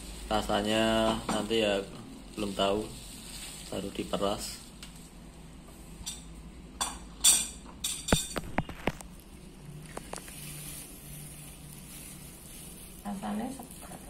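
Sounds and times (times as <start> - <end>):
plastic bag crinkling: 0.0 - 4.8, 8.4 - 14.0.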